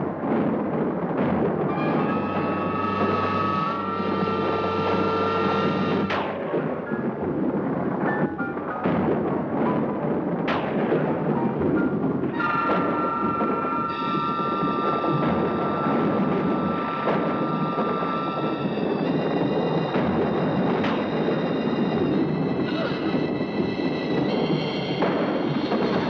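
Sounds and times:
eerie horror film score: 0.0 - 26.0.

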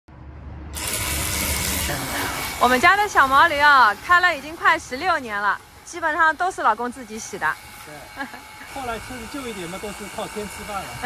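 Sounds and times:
pressure washer motor humming: 0.8 - 11.0
water jet hissing: 0.8 - 11.0.

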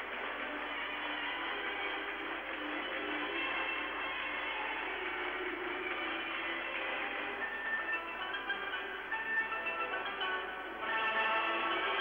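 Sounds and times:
music from old television recording: 0.0 - 12.0.

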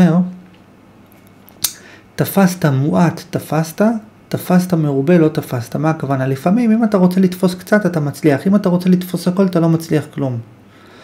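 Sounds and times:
man speaking: 0.0 - 0.4, 2.2 - 10.6
mouth noise: 1.6 - 1.9.

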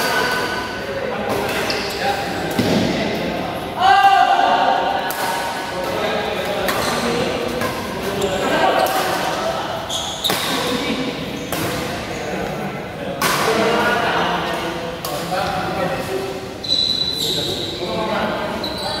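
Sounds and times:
voices calling in a hall: 0.0 - 19.0
racket hitting shuttlecock: 10.3 - 10.8.

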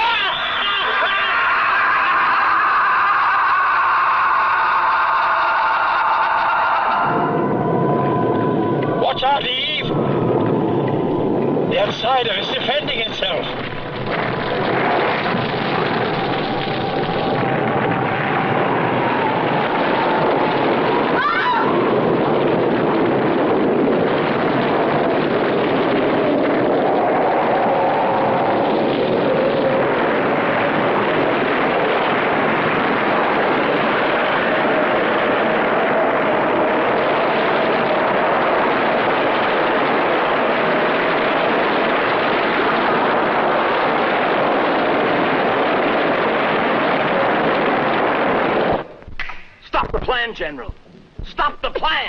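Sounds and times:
loud rushing noise: 0.0 - 50.0.

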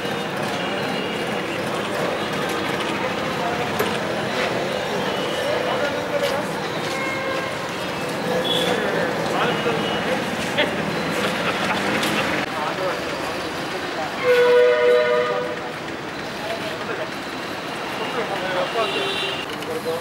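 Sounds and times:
forecourt noise: 0.0 - 20.0
voices: 0.0 - 20.0
horn blast: 14.2 - 15.7.

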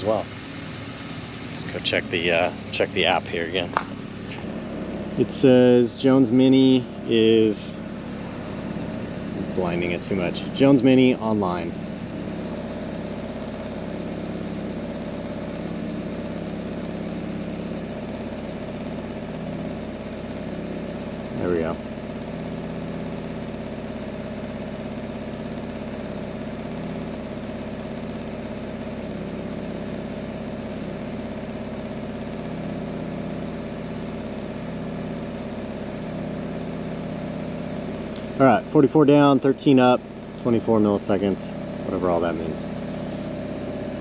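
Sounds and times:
car engine idling: 0.0 - 44.0.

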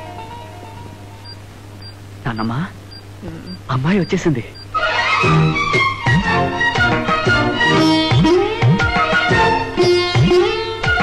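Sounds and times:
music: 0.0 - 1.4, 4.8 - 11.0
steady low hum: 0.0 - 4.8
medical monitor high beeps: 1.2 - 4.8
man calling out: 2.3 - 4.6.

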